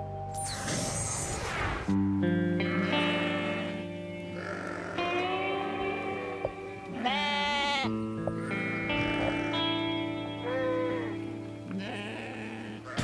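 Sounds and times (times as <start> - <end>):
background guitar music: 0.0 - 13.0
sheep bleating: 2.6 - 13.0.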